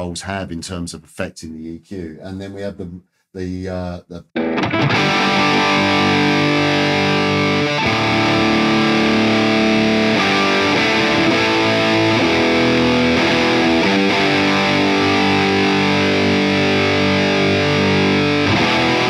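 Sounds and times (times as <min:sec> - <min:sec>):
distorted electric guitar chords: 0:04.4 - 0:19.0.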